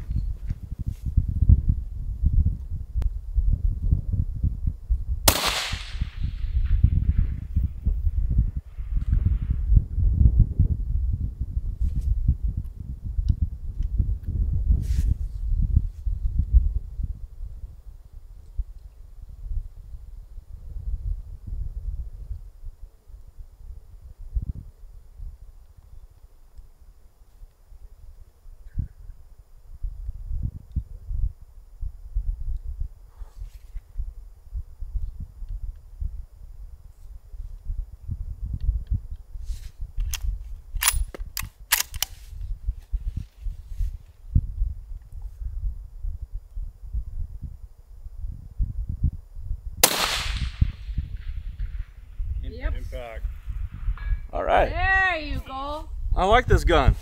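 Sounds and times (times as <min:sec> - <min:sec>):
wind rumble on microphone: 0:00.0 - 0:57.0
suppressed rifle shot: 0:05.2 - 0:07.5, 0:49.8 - 0:52.0
sharp click: 0:40.0 - 0:42.2.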